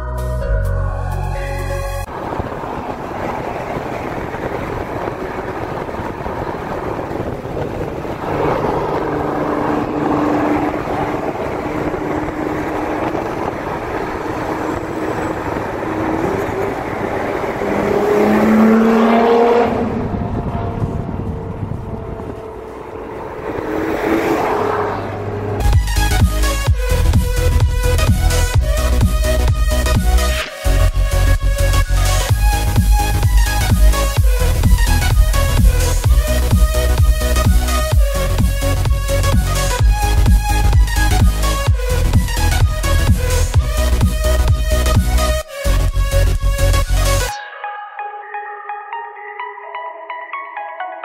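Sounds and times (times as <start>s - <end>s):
wind and road noise: 1.0s - 47.3s
car engine accelerating: 1.8s - 47.4s.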